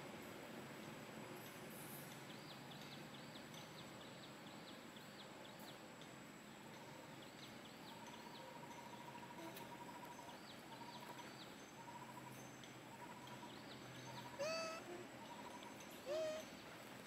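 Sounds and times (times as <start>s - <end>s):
bird trills and chirps: 6.7s - 16.6s
monkey squealing: 14.3s - 15.0s, 16.0s - 16.5s.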